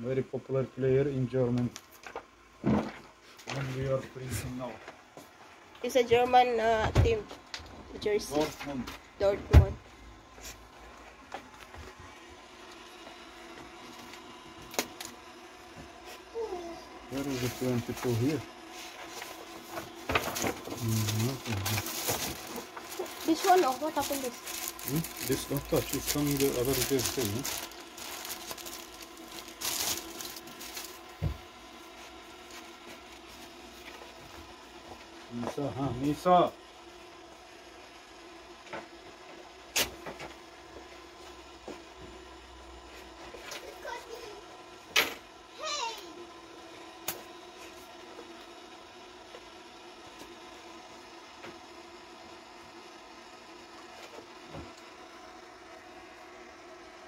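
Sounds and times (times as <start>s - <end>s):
paper rustling and shuffling: 17.2s - 34.2s.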